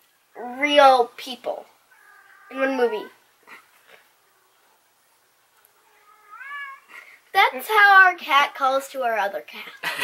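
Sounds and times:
cat meowing: 0:01.9 - 0:03.2, 0:05.8 - 0:07.0.

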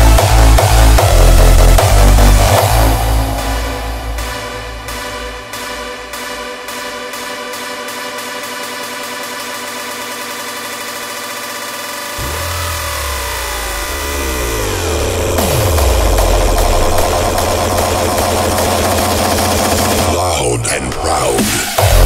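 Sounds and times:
hardstyle dance music: 0:00.0 - 0:22.0.

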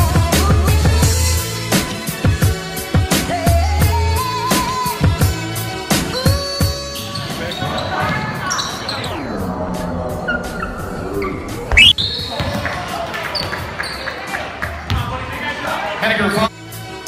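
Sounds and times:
music: 0:00.0 - 0:17.0
sneaker squeaks: 0:11.2 - 0:12.6.

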